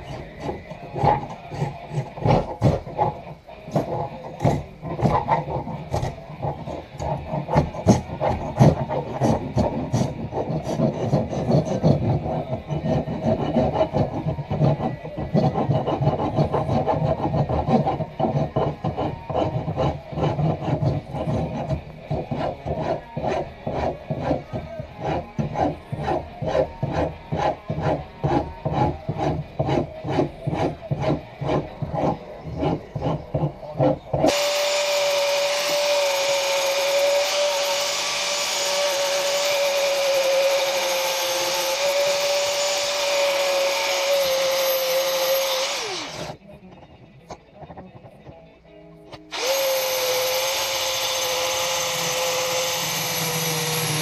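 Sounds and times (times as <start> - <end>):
hand rubbing wooden handle: 0.0 - 34.3
angle grinder whining: 0.0 - 46.4, 49.2 - 54.0.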